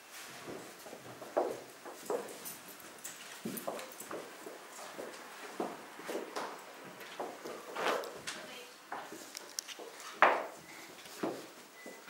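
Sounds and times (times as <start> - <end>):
footsteps on wooden floorboards: 0.4 - 2.4, 3.2 - 12.0.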